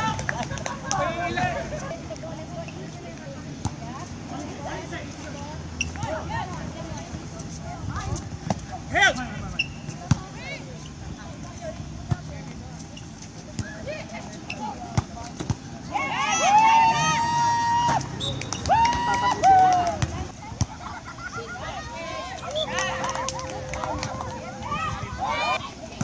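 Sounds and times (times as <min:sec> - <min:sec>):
voices in background: 0:00.0 - 0:26.0
high-pitched shouts and cheers: 0:15.9 - 0:20.0.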